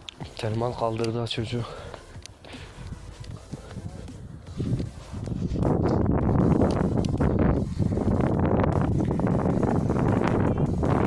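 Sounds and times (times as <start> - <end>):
wind rumble on microphone: 0.6 - 11.0.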